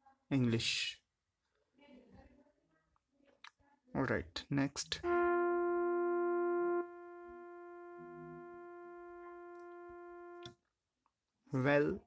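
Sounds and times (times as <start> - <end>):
held electronic keyboard note: 5.0 - 10.6.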